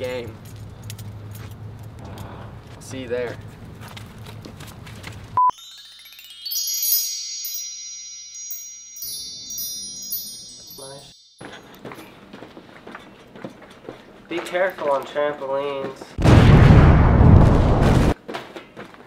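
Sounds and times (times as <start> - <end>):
high bell-like chime run: 5.4 - 11.7.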